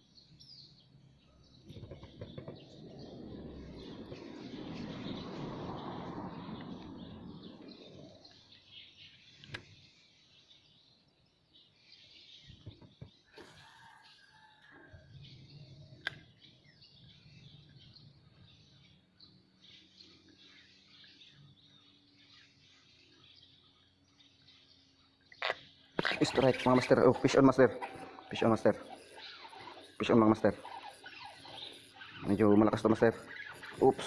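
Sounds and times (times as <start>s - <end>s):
faint bird chirps: 0.0s - 34.0s.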